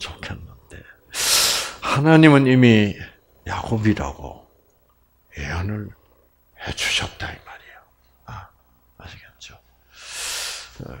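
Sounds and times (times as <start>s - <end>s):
man speaking softly: 10.8s - 11.0s.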